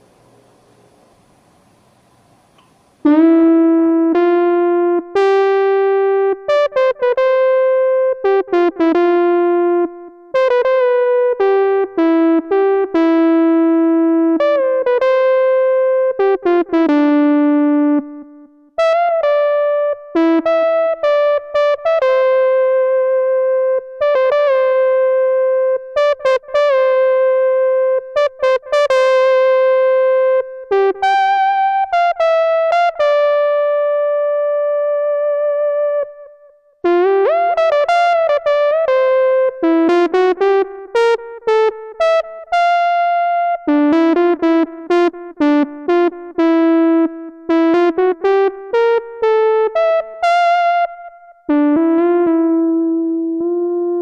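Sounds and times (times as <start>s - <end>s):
analog synthesizer melody: 3.0s - 54.0s.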